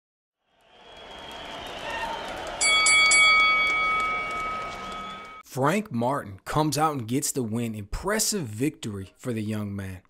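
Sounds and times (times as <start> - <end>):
crowd noise: 1.0 - 5.4
boxing ring bell: 2.6 - 5.4.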